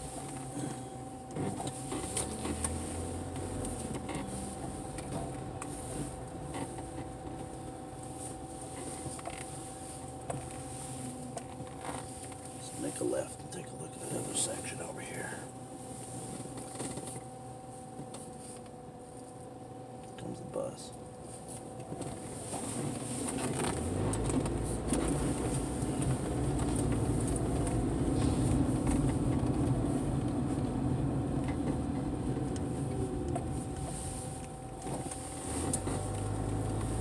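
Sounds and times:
car cabin rumble: 0:00.0 - 0:37.0
faint constant hum: 0:00.0 - 0:37.0.

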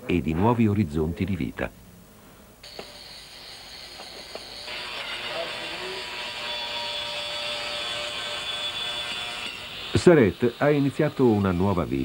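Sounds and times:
steady hiss: 0:00.2 - 0:06.2, 0:09.5 - 0:12.0.

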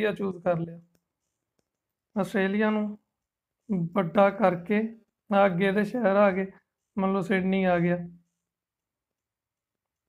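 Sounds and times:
person speaking: 0:00.0 - 0:01.3, 0:02.1 - 0:08.4.

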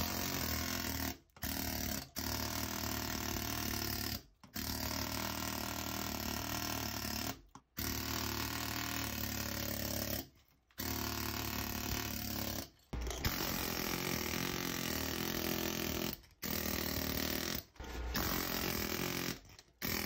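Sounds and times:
chipping hammer breaking concrete: 0:00.0 - 0:20.0.

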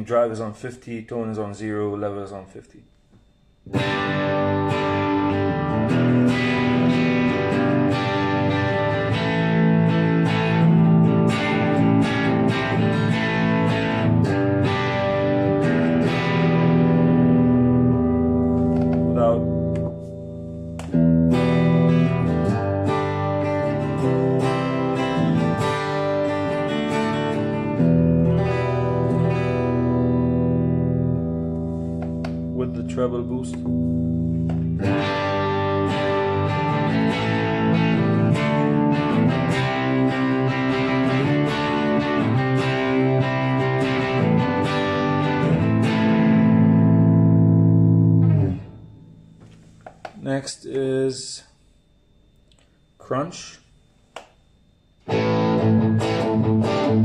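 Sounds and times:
electric guitar chords ringing: 0:02.9 - 0:57.0.

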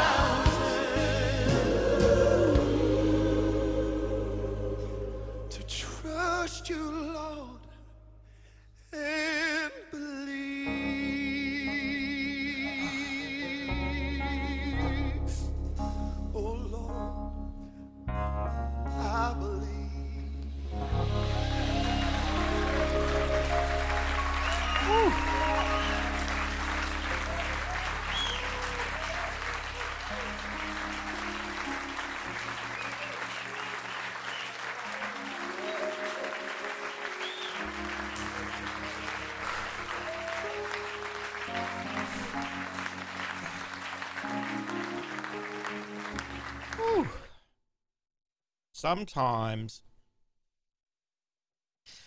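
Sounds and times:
audience applauding: 0:00.0 - 0:02.7, 0:20.8 - 0:47.3
held instrumental chords: 0:00.0 - 0:06.2, 0:20.5 - 0:33.9.

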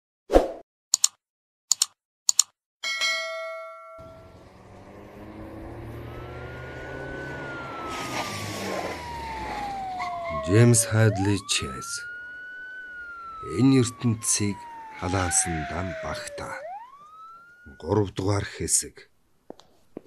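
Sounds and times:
sharp clicks: 0:00.9 - 0:02.6
bell-like ding: 0:02.8 - 0:04.3
falling siren-like tone: 0:04.0 - 0:18.2.

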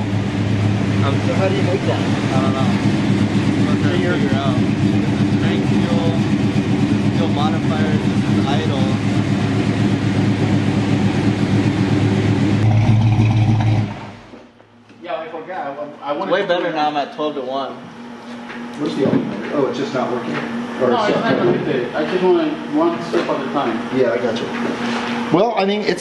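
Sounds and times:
car engine idling loudly: 0:00.0 - 0:14.4.

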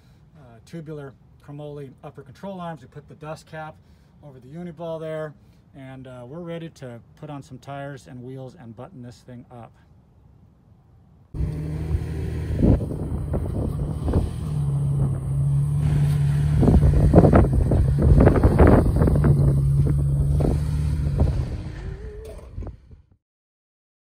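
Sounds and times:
tyres crunching on dirt: 0:11.4 - 0:21.8
truck engine running: 0:11.4 - 0:22.8.

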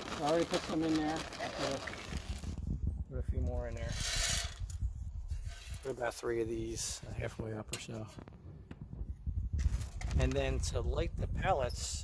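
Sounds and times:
pellets clicking and rattling: 0:00.0 - 0:02.4
pellets pouring into metal hopper: 0:00.0 - 0:02.4.

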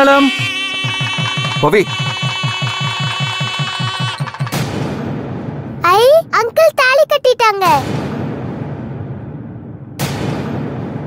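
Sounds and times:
held high note: 0:00.0 - 0:04.5
fast wedding drumming: 0:00.0 - 0:04.8.

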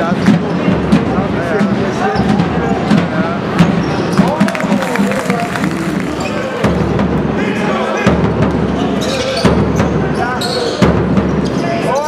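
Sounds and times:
basketball bouncing on court: 0:04.2 - 0:07.0
indistinct voices: 0:04.2 - 0:07.7.

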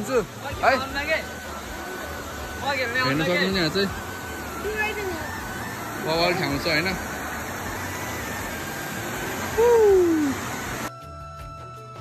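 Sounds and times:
rushing stream water: 0:00.0 - 0:10.9.

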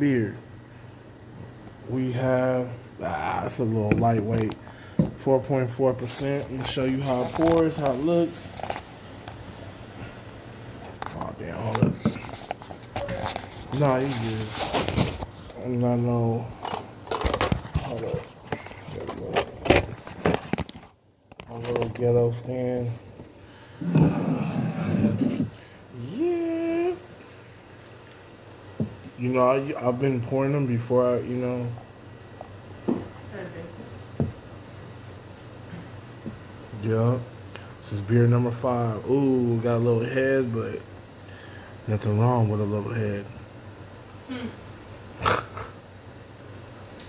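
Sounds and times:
low steady hum: 0:00.0 - 0:47.0
man humming: 0:23.8 - 0:27.2.

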